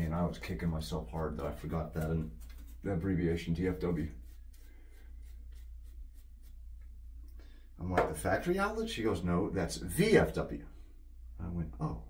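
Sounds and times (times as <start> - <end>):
shaving brush scrubbing lather: 0.0 - 7.4.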